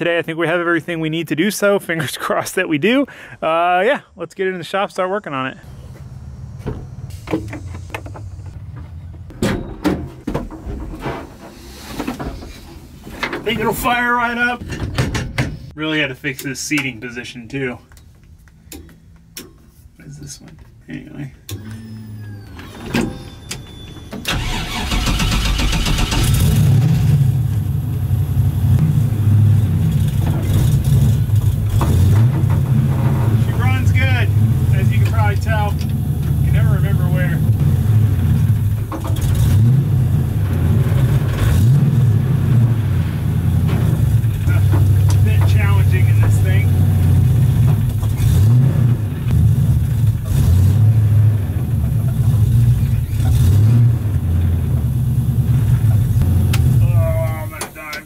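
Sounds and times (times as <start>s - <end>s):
engine cranking on starter: 21.5s - 27.5s
engine idling: 24.3s - 31.8s.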